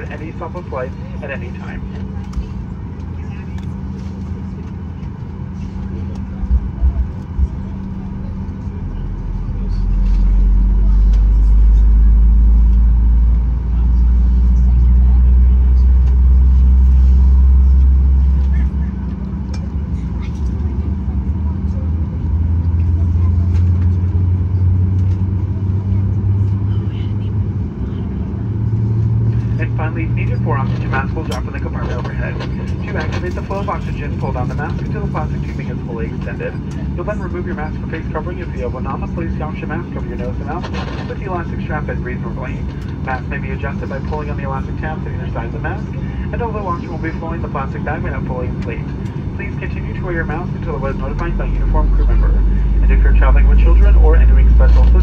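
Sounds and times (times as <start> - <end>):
cabin announcement voice: 0.0 - 22.2, 29.3 - 55.0
airplane cabin hum and rumble: 0.0 - 55.0.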